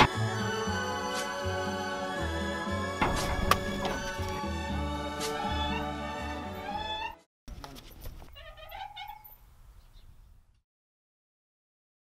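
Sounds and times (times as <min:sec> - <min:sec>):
swing creaking and squeaking: 0:07.9 - 0:09.5.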